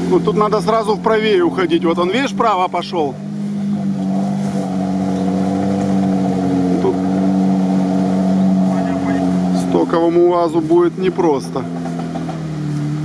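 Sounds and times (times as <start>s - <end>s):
vehicle engine droning: 0.0s - 13.0s.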